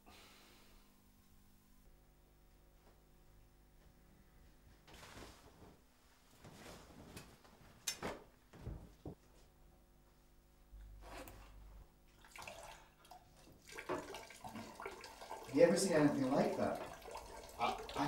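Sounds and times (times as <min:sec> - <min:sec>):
water splashing at sink: 0:12.1 - 0:18.0.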